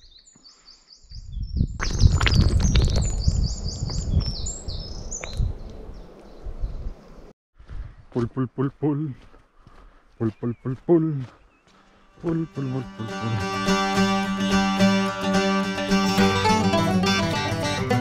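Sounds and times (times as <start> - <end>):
songbird singing: 0.0 - 7.3, 10.1 - 14.2.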